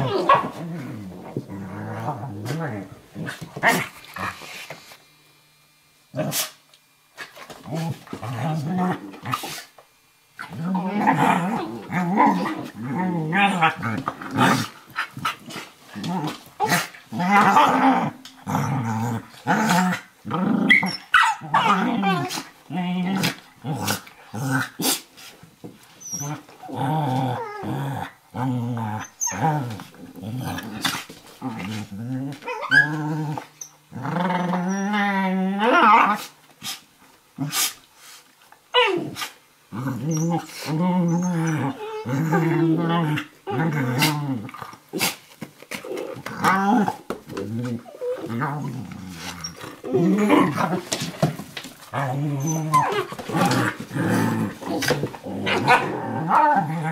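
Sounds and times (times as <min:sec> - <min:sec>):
dogs growling in play: 0:00.0 - 0:05.0, 0:06.1 - 0:06.6, 0:07.2 - 0:09.8, 0:10.4 - 0:25.3, 0:26.0 - 0:37.8, 0:38.7 - 0:56.9
dogs snapping and scuffling: 0:29.5 - 0:33.5, 0:43.6 - 0:56.1.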